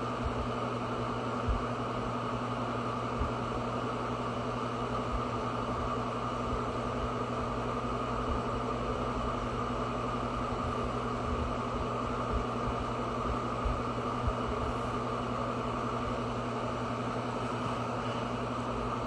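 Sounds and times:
mechanical hum with hiss: 0.0 - 19.0.

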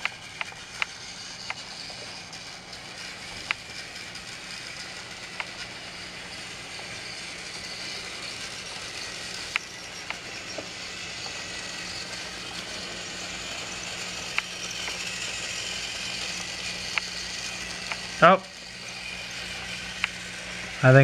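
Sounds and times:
toy train motor whirring: 0.0 - 21.0.

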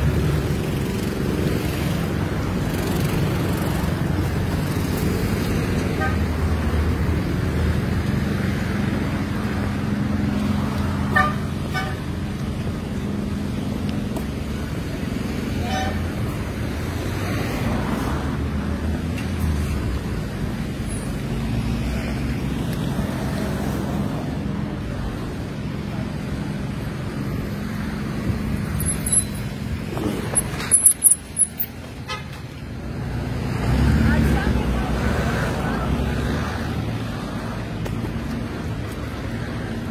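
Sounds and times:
car engines and road traffic: 0.0 - 39.9.

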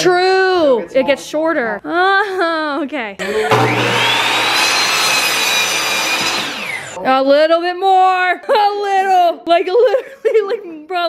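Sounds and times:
electric miter saw whining: 3.2 - 7.0
saw blade rasping in wood: 3.5 - 7.0.

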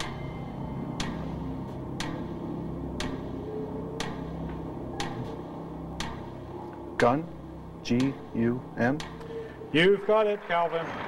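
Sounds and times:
clock ticking: 0.0 - 10.2
low music bed: 0.0 - 11.0.

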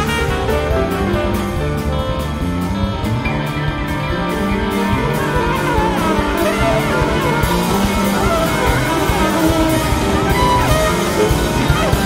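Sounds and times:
bass and drums: 0.0 - 12.0
electric guitar with bending notes: 0.0 - 12.0.

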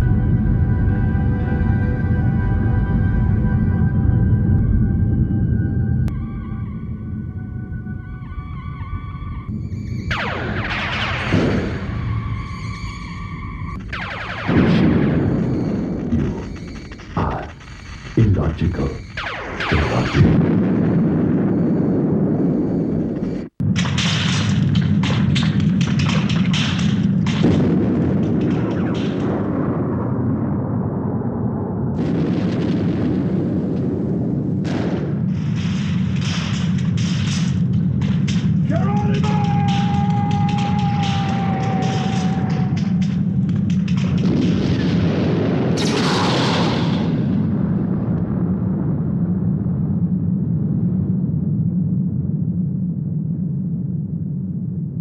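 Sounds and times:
loud low rumble: 0.0 - 12.5
explosion deep rumble: 0.0 - 55.0
crackling blasts: 6.0 - 55.0.

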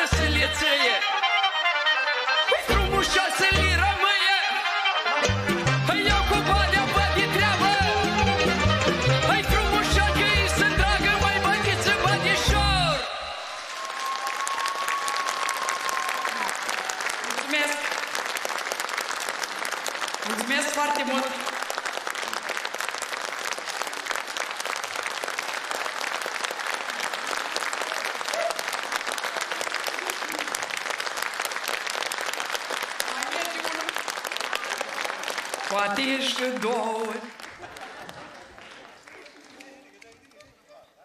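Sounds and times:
audience applauding: 5.6 - 40.7.

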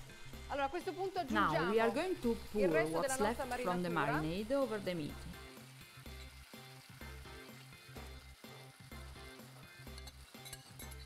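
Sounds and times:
marinade sizzling and spitting: 0.0 - 11.0.

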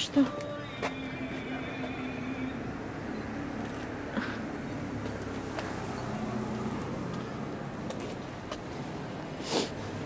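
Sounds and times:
low hum of street traffic: 0.0 - 10.0.

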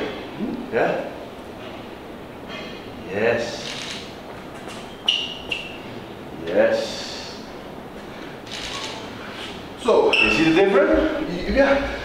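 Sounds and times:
faint steady room noise: 0.0 - 12.0
short high-pitched squeaks: 4.8 - 5.9, 10.1 - 10.5.

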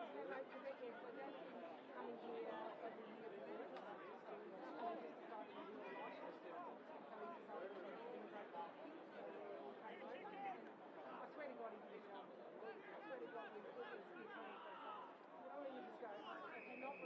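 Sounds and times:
faint chatter of people: 0.0 - 17.0.

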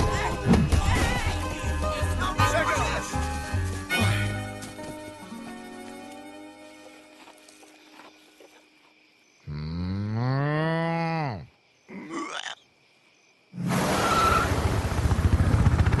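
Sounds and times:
helicopter rotor chopping: 14.9 - 16.0.

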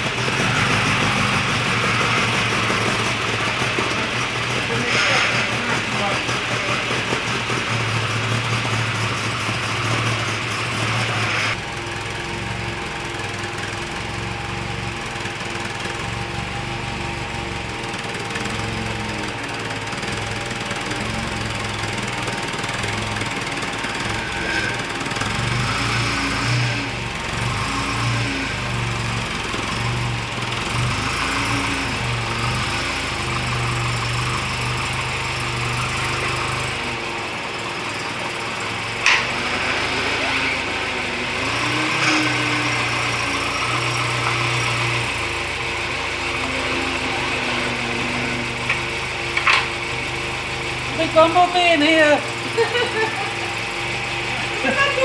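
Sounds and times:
car engine running: 0.0 - 55.0.

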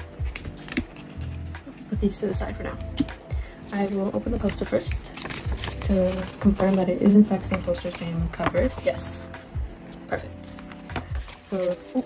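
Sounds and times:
lo-fi hip-hop music: 0.0 - 12.0.

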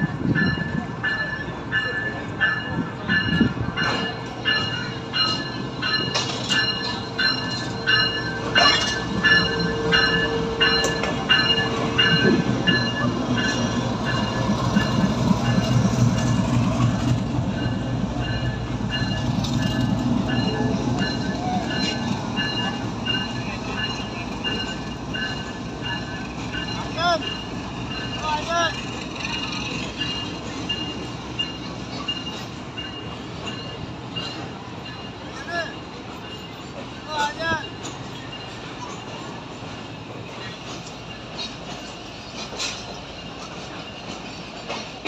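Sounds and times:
locomotive engines rumbling: 0.0 - 45.0
wheels squealing on rails: 0.0 - 45.0.

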